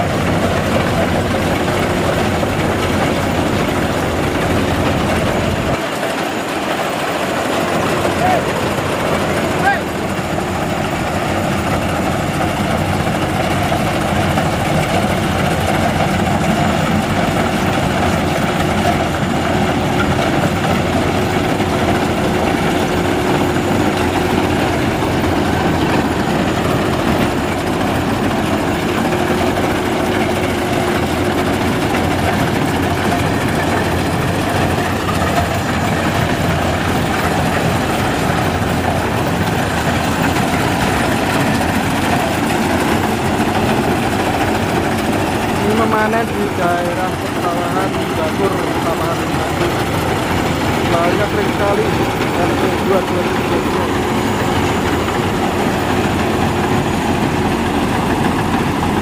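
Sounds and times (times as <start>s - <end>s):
combine harvester droning: 0.0s - 59.0s.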